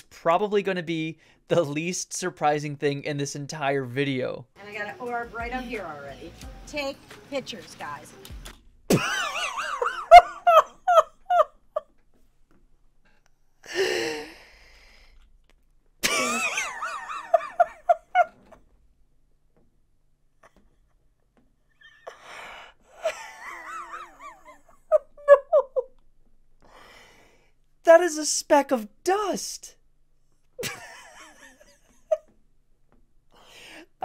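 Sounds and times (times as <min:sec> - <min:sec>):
man laughing hard: 0:08.9 - 0:11.5, 0:16.0 - 0:18.5, 0:23.0 - 0:25.9, 0:30.6 - 0:32.2
gasping in-breath: 0:13.6 - 0:15.4, 0:22.0 - 0:23.0, 0:26.6 - 0:27.6, 0:33.3 - 0:34.0.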